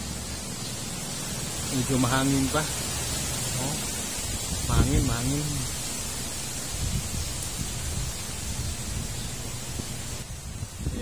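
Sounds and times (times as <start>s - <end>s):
wind rustling leaves: 0.0s - 11.0s
wind rumble on microphone: 3.8s - 11.0s.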